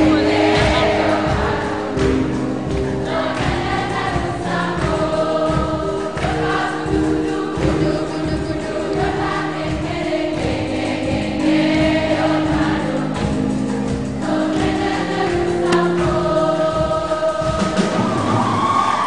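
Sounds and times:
steady beat: 0.0 - 18.7
choir singing a hymn: 0.0 - 19.0.

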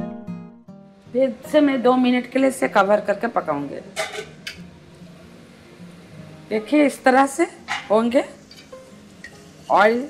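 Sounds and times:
metal lid clinking on pot: 4.0 - 4.6, 7.7 - 9.5.

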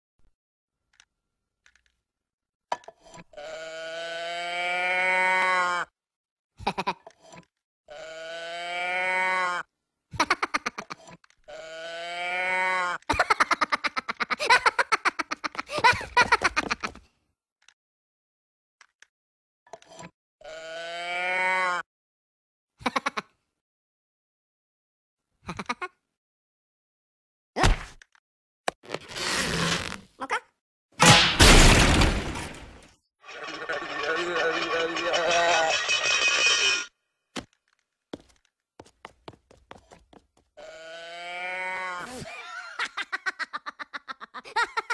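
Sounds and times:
moo can toy mooing: 3.3 - 5.9, 7.9 - 9.7, 11.5 - 13.0, 20.4 - 21.8, 40.6 - 42.1
cartoon character giggling: 6.6 - 7.1, 10.2 - 11.0, 13.1 - 17.0, 22.8 - 23.4, 25.5 - 26.0, 42.1 - 44.9.

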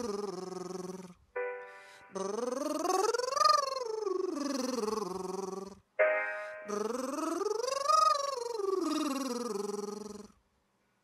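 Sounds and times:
piano chord: 1.3 - 2.2, 6.0 - 6.7.

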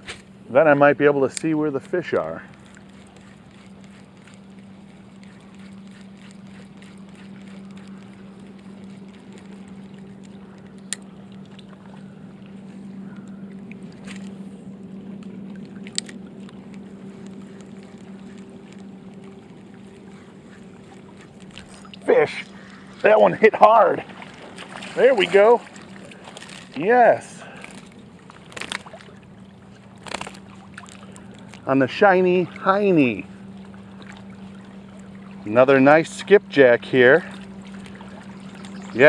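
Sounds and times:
distant boat engine drone: 0.0 - 39.0.

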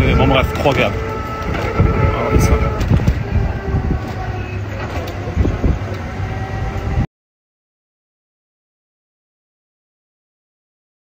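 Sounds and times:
faint voices: 0.0 - 7.0
wind buffeting microphone: 0.0 - 7.1.

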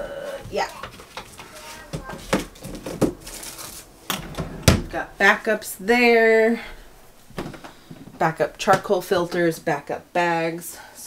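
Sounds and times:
items rustling in a drawer: 0.6 - 5.0
sharp knocks: 4.1 - 5.1.

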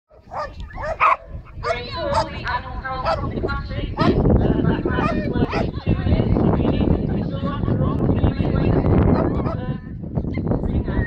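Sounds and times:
dog barking: 0.1 - 2.4, 3.0 - 3.3, 4.0 - 4.2, 5.0 - 5.7.

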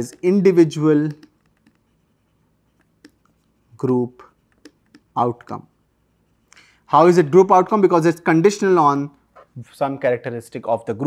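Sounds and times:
stylus tapping on tablet screen: 1.1 - 2.0.

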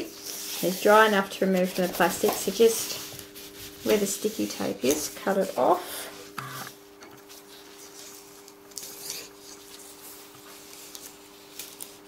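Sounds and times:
plastic sheet and tape rustling: 0.0 - 6.6, 7.2 - 12.0.

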